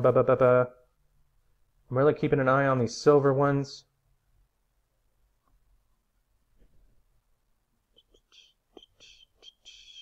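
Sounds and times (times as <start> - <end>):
faint whispering voice: 8.0 - 10.0.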